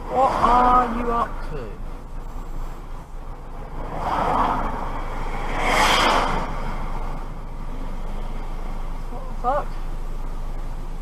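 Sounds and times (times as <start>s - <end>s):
car road and engine noise: 0.0s - 11.0s
whooshes: 3.6s - 8.4s.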